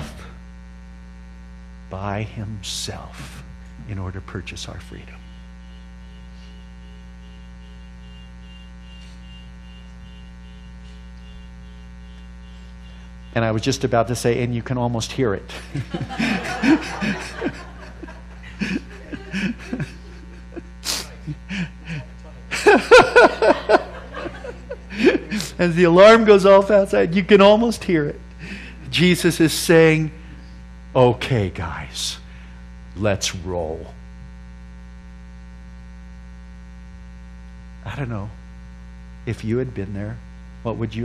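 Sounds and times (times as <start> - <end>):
electrical mains hum: 0.0 - 41.0
people laughing: 15.5 - 26.0
sharp breathy burst: 28.4 - 28.9.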